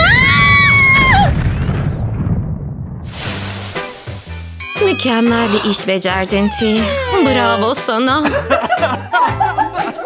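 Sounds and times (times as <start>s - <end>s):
woman screaming: 0.0s - 1.3s, 4.8s - 7.9s
explosion boom rumble: 0.4s - 4.6s
hissing rush of noise: 3.0s - 4.6s.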